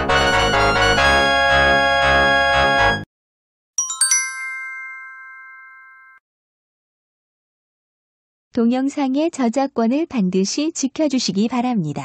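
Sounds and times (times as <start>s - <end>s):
bell-like chime ringing: 3.8s - 6.2s.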